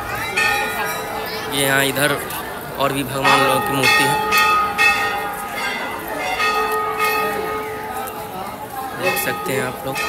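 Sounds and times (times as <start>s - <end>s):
brass temple bells ringing: 0.0s - 2.2s, 2.9s - 10.0s.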